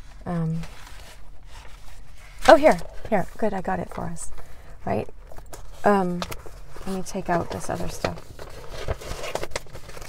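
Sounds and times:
hands rummaging through papers: 0.0 - 10.0
low steady hum in car: 0.0 - 10.0.

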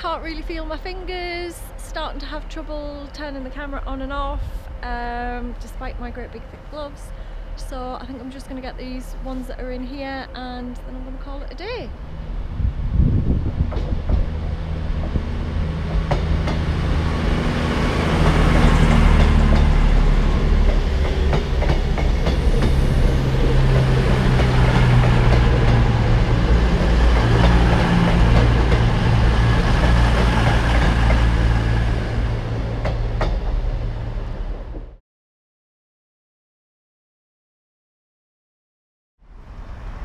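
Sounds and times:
diesel train engine drone: 0.0 - 35.0
train wheel clicks: 15.9 - 20.0, 20.6 - 31.8.

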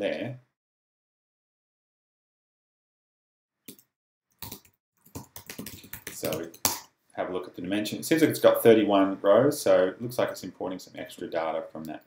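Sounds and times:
computer keyboard typing: 4.4 - 6.8.

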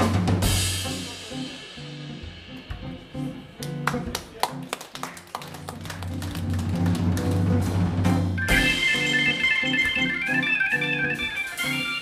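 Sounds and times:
electric bass guitar notes: 6.5 - 12.0.

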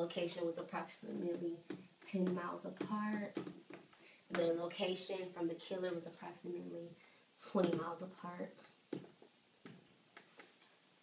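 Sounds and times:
marker tapping on whiteboard: 1.2 - 4.6.

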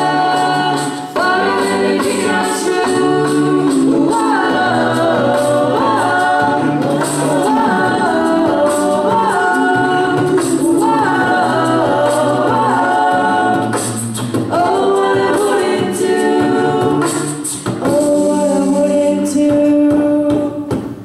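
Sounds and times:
female a cappella group singing: 0.0 - 20.8.

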